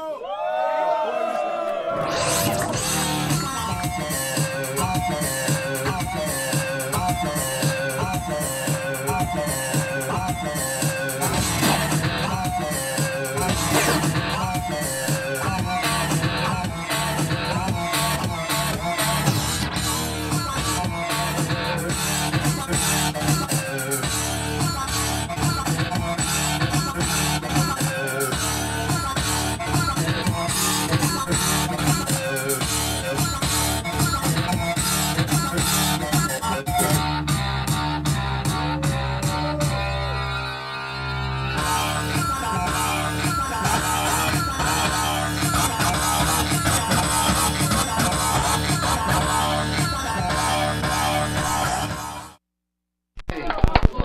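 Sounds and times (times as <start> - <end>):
guitar-heavy rock music: 2.2 - 37.3, 41.6 - 52.2.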